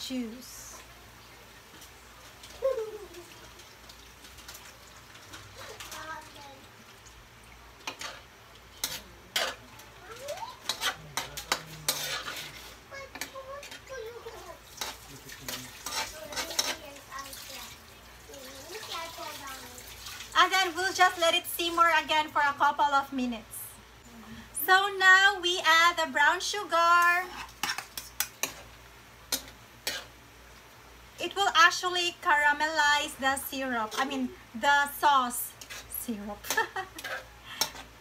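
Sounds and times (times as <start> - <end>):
metal spoon scraping a wok: 7.8 - 9.7, 10.6 - 13.8, 14.8 - 16.8, 27.2 - 28.6, 29.3 - 30.2, 35.5 - 38.0.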